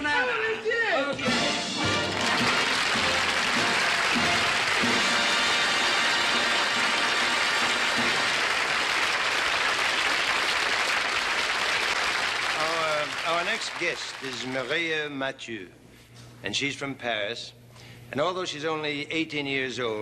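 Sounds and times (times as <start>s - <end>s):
faint band music: 0.7s - 8.6s
audience applauding: 1.8s - 15.0s.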